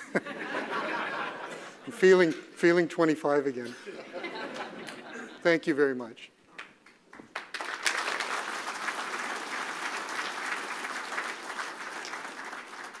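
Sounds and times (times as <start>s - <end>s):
audience applauding: 7.1s - 13.0s.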